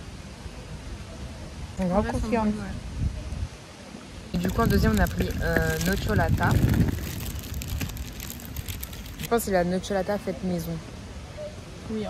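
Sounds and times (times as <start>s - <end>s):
paper rustling: 4.4s - 9.3s.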